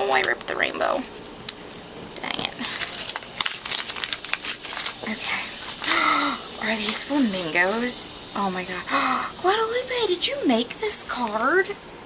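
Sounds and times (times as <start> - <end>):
paper envelope tearing: 2.6 - 5.6.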